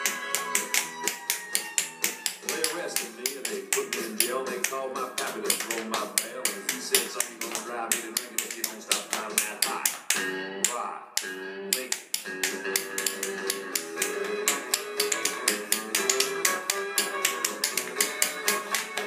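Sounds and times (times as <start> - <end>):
tap shoes on hard floor: 0.0 - 19.0
upbeat country song: 0.0 - 19.0.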